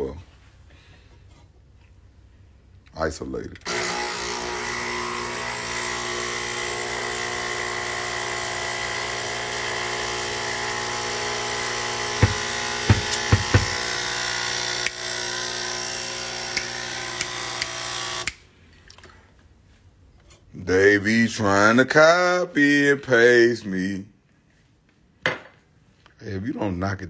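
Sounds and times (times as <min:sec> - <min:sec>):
small electric motor running: 0:03.7 - 0:18.3
sharp knocks: 0:12.2 - 0:13.8.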